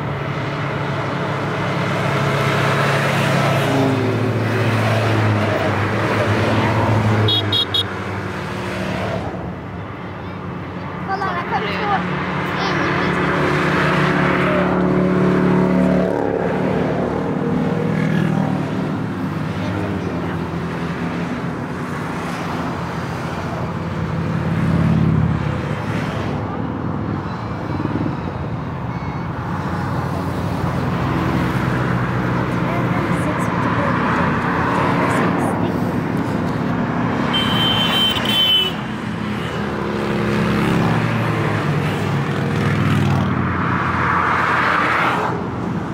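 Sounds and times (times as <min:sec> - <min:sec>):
vehicles passing on motorway: 0:00.0 - 0:45.9.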